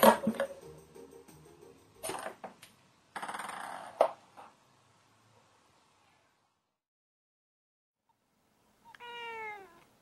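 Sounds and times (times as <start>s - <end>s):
cat meowing: 8.8s - 9.9s.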